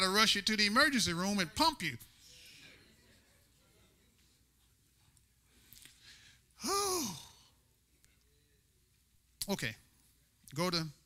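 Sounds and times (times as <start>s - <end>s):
man saying oh breathily: 6.6s - 7.4s.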